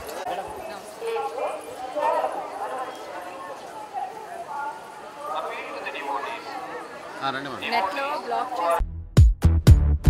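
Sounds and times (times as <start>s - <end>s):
several voices speaking: 0.2s - 8.8s.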